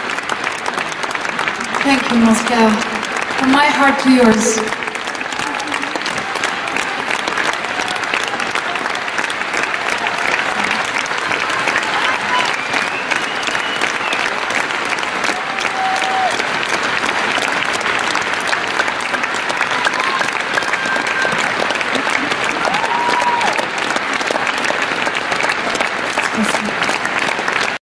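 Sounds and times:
concert audience applauding: 0:00.0 - 0:27.8.

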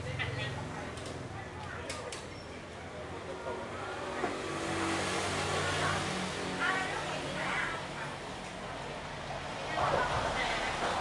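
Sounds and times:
faint indistinct chatter: 0:00.0 - 0:11.0.

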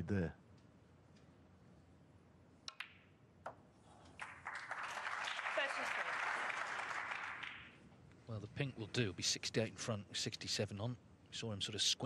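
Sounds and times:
snooker balls clicking: 0:02.6 - 0:03.6
audience applause: 0:04.2 - 0:07.5.

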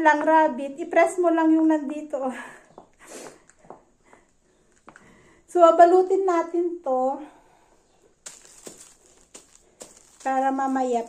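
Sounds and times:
handling clicks and rustles: 0:08.2 - 0:11.0.

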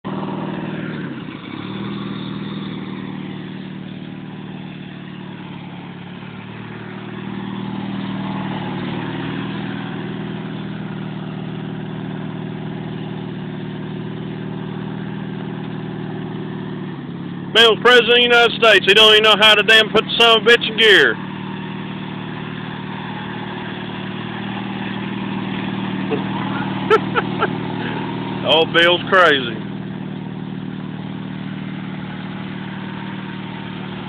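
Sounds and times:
riding lawn mower engine: 0:00.0 - 0:34.0.

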